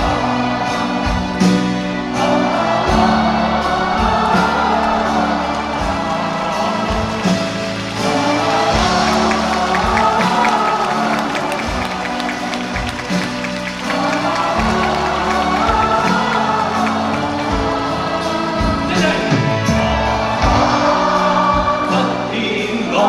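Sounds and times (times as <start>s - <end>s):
crowd noise: 0.0s - 23.0s
person singing: 0.0s - 23.0s
drum beat: 5.6s - 20.9s.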